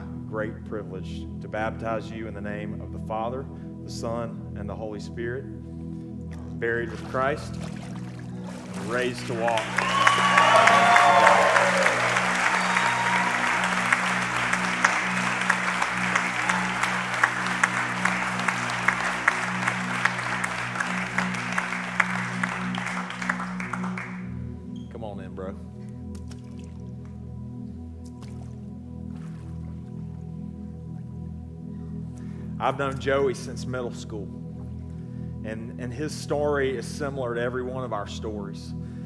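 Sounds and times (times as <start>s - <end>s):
soft sustained music chords: 0.0s - 39.0s
congregation clapping: 8.4s - 24.5s.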